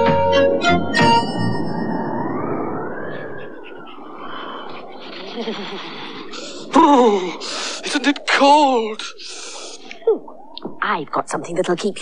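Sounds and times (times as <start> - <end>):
wind whooshing: 0.0 - 8.4
breathy hiss: 5.0 - 8.1, 9.0 - 10.0.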